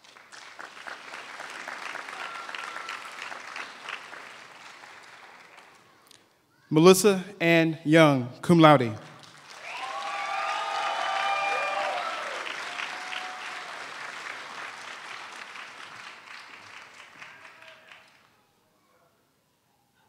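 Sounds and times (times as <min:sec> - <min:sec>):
audience applauding: 0:00.0 - 0:06.2, 0:09.0 - 0:18.4.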